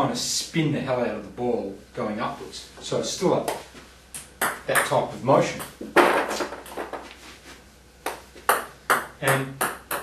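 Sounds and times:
ball tapping lightly: 4.4s - 4.9s, 8.0s - 10.0s.

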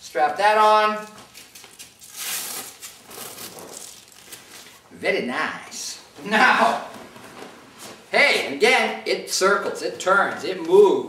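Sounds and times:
nylon strap and velcro rustling: 1.0s - 4.8s.

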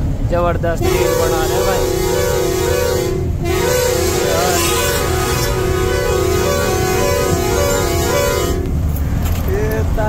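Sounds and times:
truck rumbling: 0.0s - 10.0s
man speaking: 0.3s - 2.0s, 4.1s - 5.0s
keyboard music: 0.9s - 8.8s.

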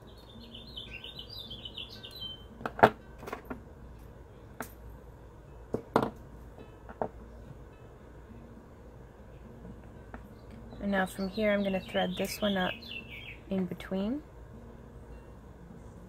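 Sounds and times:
songbird chirping: 0.0s - 2.7s, 9.1s - 16.0s.

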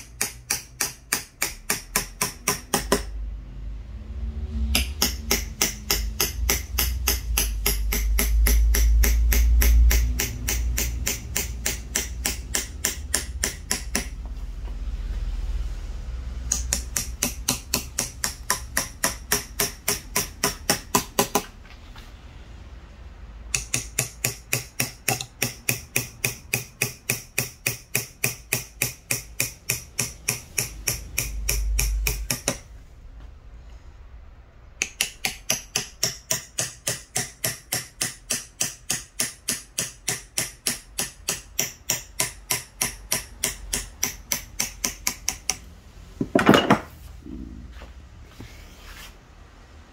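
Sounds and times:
hammer tapping knife into wood: 0.0s - 3.1s, 4.8s - 14.2s, 16.5s - 21.5s, 23.5s - 32.6s, 34.8s - 45.6s.

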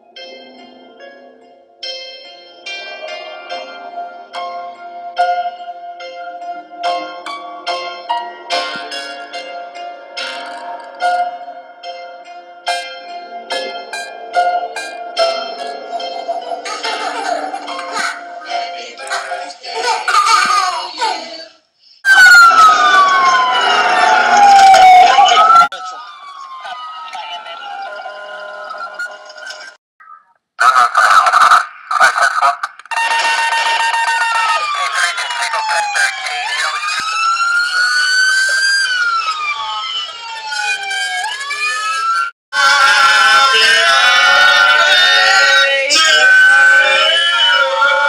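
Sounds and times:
police sirens wailing: 2.5s - 20.6s, 22.1s - 29.8s, 30.6s - 48.0s.

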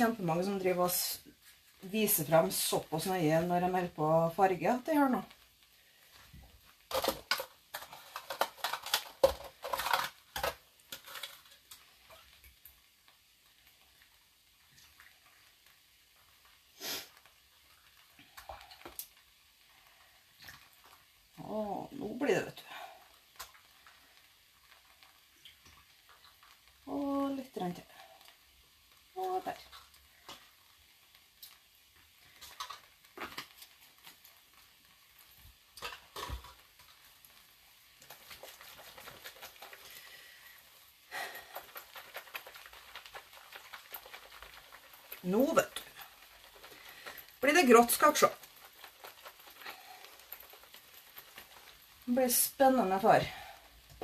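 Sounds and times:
plastic bowls clicking and knocking: 6.9s - 11.8s, 35.8s - 36.6s.

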